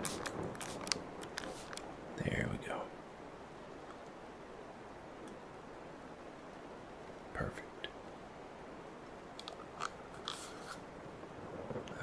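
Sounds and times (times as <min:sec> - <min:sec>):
crisp crackles of packaging: 0:00.0 - 0:01.9
steady rain: 0:00.0 - 0:12.0.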